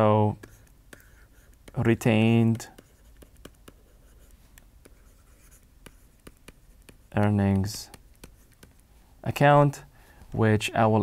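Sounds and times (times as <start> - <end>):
stylus tapping on drawing tablet: 0.4 - 8.8.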